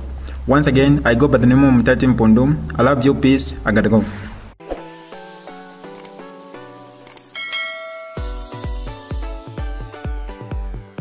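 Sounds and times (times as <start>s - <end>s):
click sound effect: 5.9s - 6.2s
bell chime sound effect: 7.4s - 9.0s.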